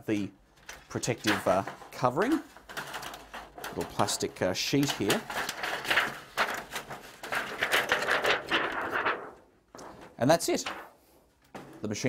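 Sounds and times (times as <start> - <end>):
plastic sheet crinkling: 0.5 - 12.0.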